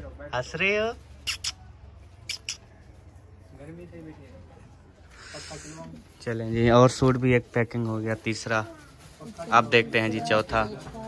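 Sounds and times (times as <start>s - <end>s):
baby lip-smacking clicks: 2.3s - 2.6s.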